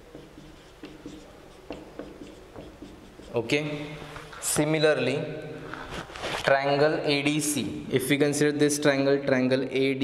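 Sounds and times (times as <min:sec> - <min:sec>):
marker pen writing on whiteboard: 0:00.0 - 0:04.7.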